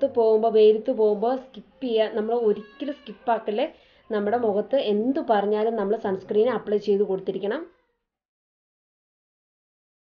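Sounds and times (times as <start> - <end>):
woman speaking: 0.0 - 7.8.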